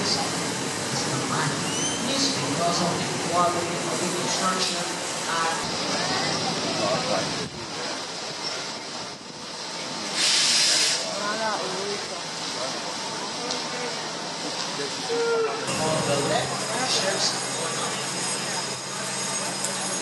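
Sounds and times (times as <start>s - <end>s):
indistinct talking: 0.0s - 10.2s, 11.0s - 20.0s
sharp hiss: 10.1s - 11.2s.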